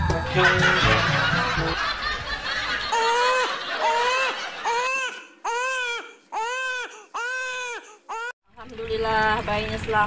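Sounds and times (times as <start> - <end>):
newborn baby crying: 2.9 - 8.4.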